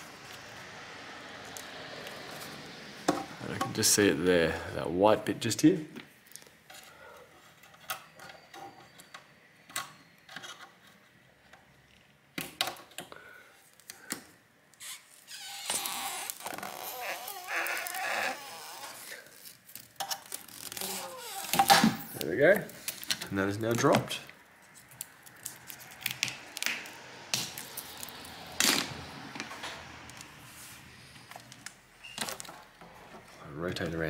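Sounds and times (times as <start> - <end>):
crackling scraping noise: 14.8 - 34.0.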